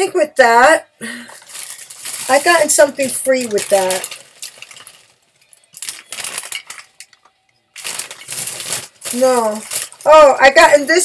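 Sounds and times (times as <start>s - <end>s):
packaging rustling and crinkling: 1.4s - 11.0s.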